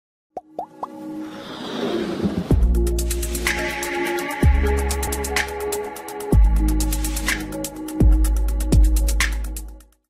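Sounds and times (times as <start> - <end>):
whoosh: 1.2 - 2.9.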